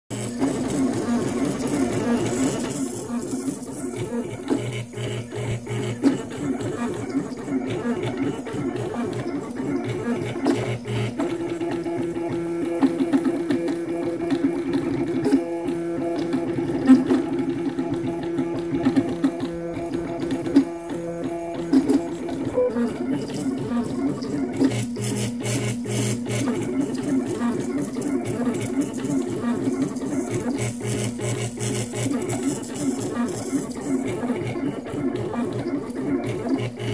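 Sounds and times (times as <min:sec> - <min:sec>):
stepper motors whining in pitched notes: 0:00.1 - 0:12.6, 0:17.4 - 0:36.9.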